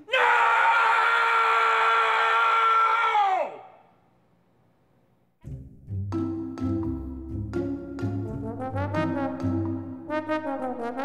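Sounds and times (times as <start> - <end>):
man screaming: 0.0 - 3.8.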